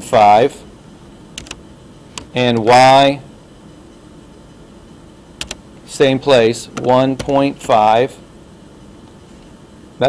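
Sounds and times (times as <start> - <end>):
faint room hiss: 0.0 - 10.0
computer keyboard clicks: 1.4 - 1.6, 5.4 - 5.6.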